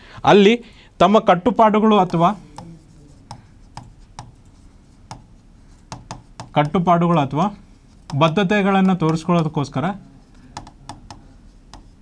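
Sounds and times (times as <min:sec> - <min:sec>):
faint room hiss: 0:00.0 - 0:12.0
pen tapping on whiteboard: 0:02.0 - 0:07.2, 0:07.9 - 0:09.6, 0:10.3 - 0:12.0.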